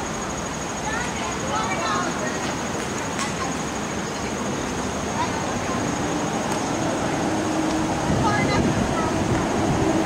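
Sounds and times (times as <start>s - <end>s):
rain: 0.0s - 10.0s
floodwater flowing: 0.1s - 10.0s.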